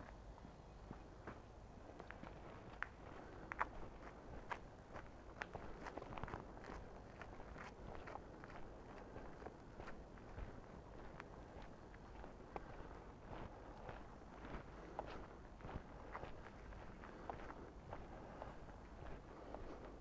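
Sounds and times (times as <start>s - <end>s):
footsteps on a towpath: 0.0s - 20.0s.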